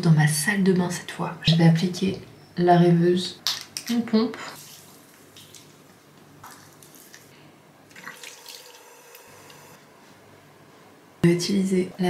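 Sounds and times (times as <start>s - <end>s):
water splashing: 7.9s - 8.9s.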